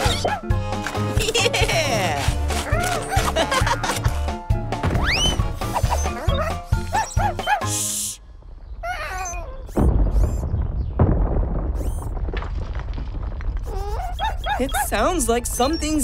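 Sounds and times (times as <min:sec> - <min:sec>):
cartoon background music: 0:00.0 - 0:08.2
deep rumbling digging effect: 0:08.3 - 0:16.0.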